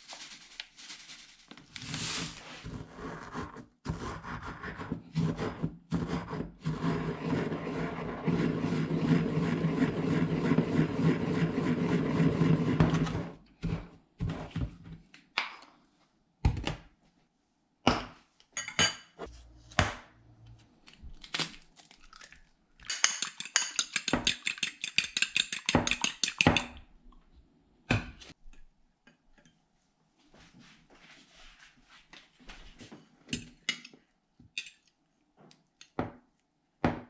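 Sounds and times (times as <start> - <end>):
soft rustle: 0.0 - 2.7, 30.2 - 33.1
fork beating egg in bowl: 3.9 - 13.0, 23.0 - 26.8.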